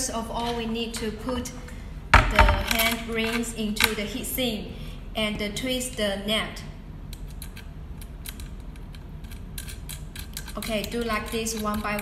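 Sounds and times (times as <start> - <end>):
small metal clicks and scrapes: 7.1 - 12.0.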